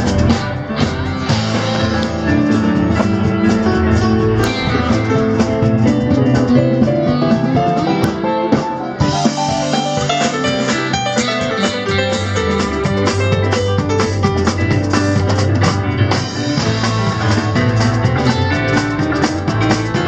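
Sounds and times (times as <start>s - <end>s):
drum kit: 0.0s - 20.0s
electric keyboard: 0.0s - 20.0s
guitar: 0.0s - 20.0s.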